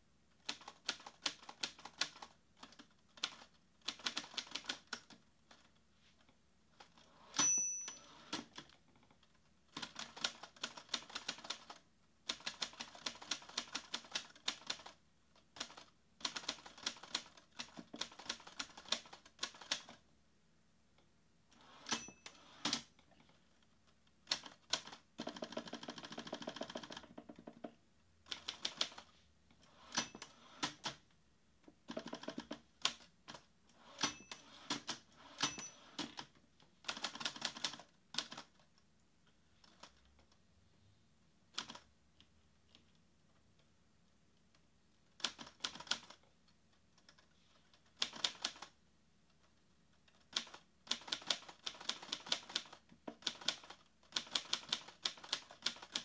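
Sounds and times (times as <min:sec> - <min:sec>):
typewriter bell ringing: 0:07.2 - 0:08.4, 0:21.8 - 0:22.6, 0:29.8 - 0:30.5, 0:33.9 - 0:36.0.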